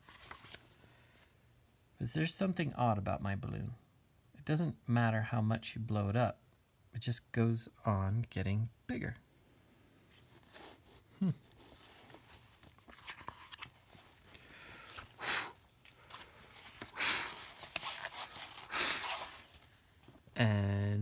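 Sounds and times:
pages turning: 0:00.0 - 0:01.3, 0:10.1 - 0:20.3
person humming: 0:11.2 - 0:11.5.

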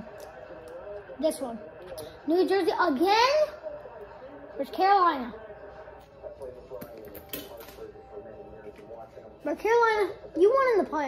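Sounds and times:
indistinct television speech: 0:00.0 - 0:11.0
television music: 0:00.0 - 0:11.0.

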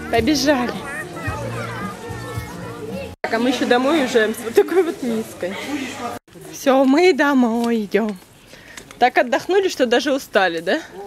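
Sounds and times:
background music: 0:00.0 - 0:04.0
distant children's voices: 0:00.7 - 0:03.2.

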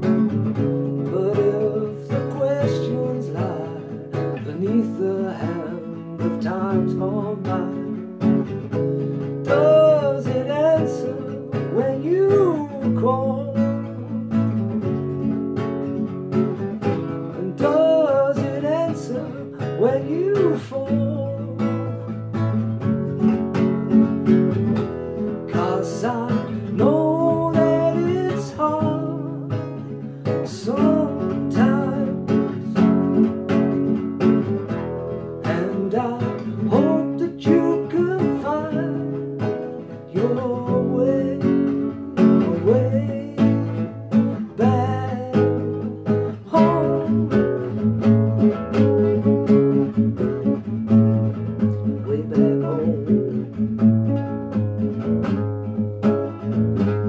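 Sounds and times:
man singing: 0:00.0 - 0:14.4, 0:16.9 - 0:22.8, 0:24.7 - 0:33.3, 0:34.7 - 0:53.9
classical guitar strumming chords: 0:00.0 - 0:57.0.

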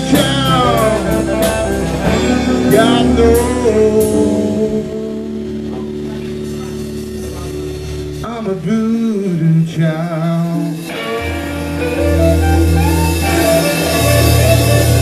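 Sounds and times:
heavy low bass note: 0:00.0 - 0:08.8, 0:11.2 - 0:15.0
blues-rock band playing: 0:00.0 - 0:15.0.

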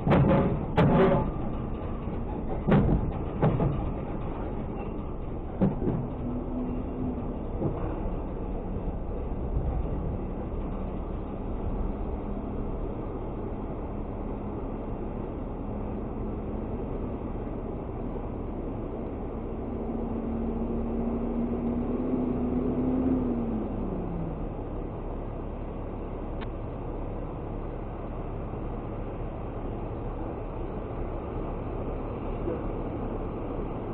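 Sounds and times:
garbage truck diesel engine running: 0:00.0 - 0:33.9
rising engine note: 0:19.1 - 0:25.3.

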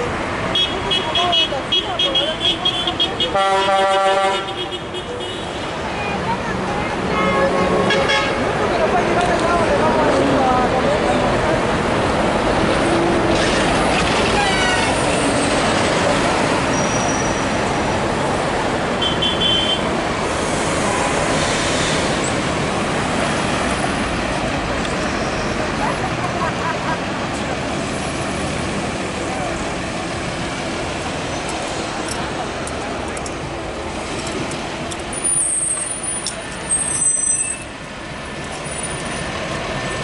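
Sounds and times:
street traffic: 0:00.0 - 0:40.0.

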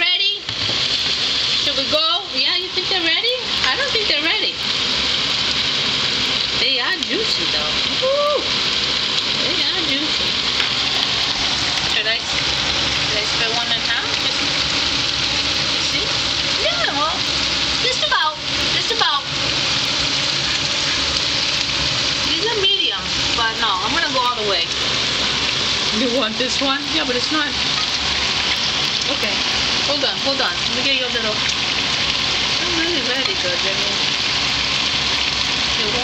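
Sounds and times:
meatballs sizzling in oil: 0:00.0 - 0:36.0.

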